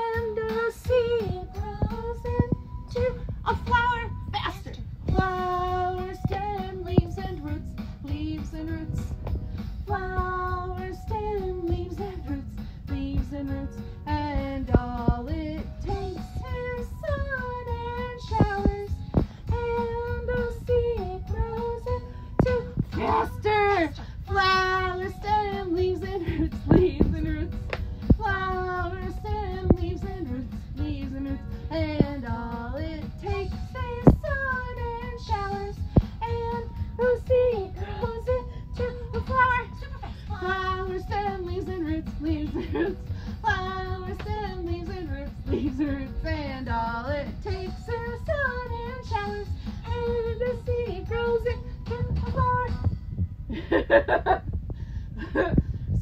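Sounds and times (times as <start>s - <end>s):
musical backing with percussive hits: 0.1s - 54.4s.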